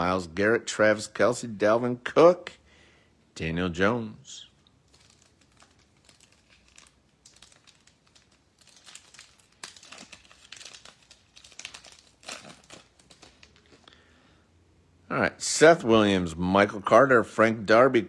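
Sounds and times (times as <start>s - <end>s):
plastic wrapper crinkling and tearing: 4.5s - 14.0s.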